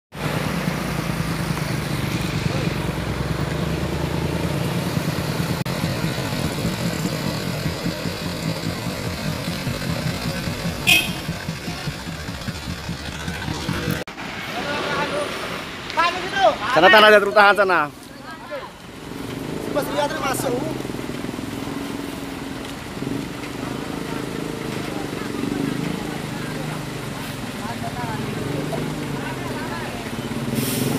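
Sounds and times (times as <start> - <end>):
road traffic passing: 0.1 - 30.9
diesel truck engine running: 0.2 - 14.1
people's voices: 5.7 - 30.9.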